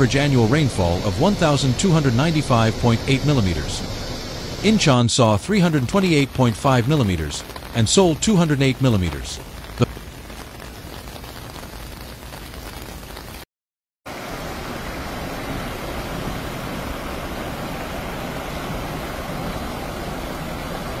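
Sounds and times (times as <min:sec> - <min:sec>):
rushing floodwater: 0:00.0 - 0:10.1, 0:14.1 - 0:21.0
heavy rain: 0:00.0 - 0:13.4, 0:14.1 - 0:21.0.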